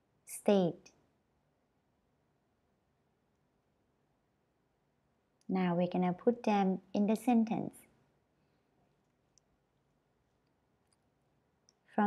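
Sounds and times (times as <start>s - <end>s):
woman speaking: 0.3s - 0.9s, 5.5s - 7.8s
faint small clicks: 9.0s - 9.6s, 10.4s - 11.9s.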